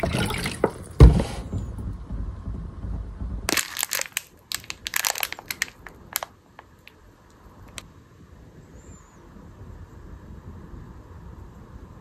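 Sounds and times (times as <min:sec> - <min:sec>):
low rumble: 0:00.3 - 0:06.2
plastic bag crinkling: 0:03.5 - 0:07.0.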